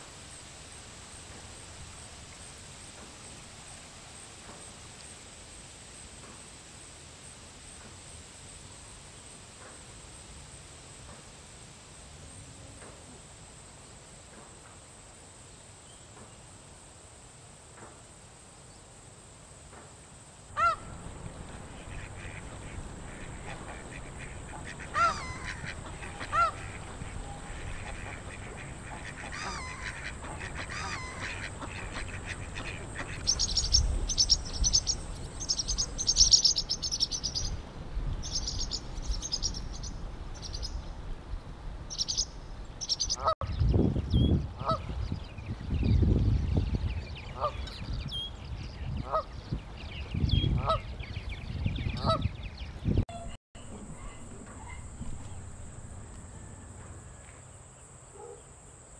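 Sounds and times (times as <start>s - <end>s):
geese honking: 20.6s - 33.7s, 53.1s - 56.7s
rapid high bird chatter: 20.6s - 37.6s
wind rumble on microphone: 20.6s - 42.8s, 43.4s - 56.8s.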